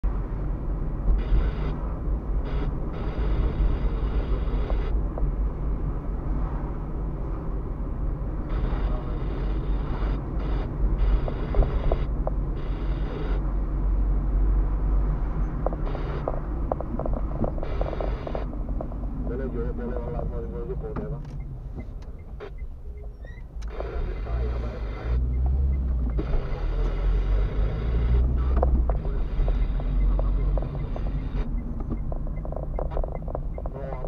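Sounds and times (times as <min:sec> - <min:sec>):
car road noise rumble: 0:00.0 - 0:34.0
higher-pitched road noise: 0:00.0 - 0:34.0.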